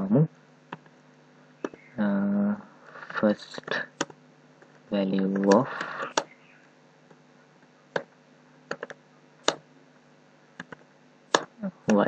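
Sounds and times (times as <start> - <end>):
faint steady hum: 0.0 - 12.0
computer keyboard keystrokes: 10.6 - 12.0.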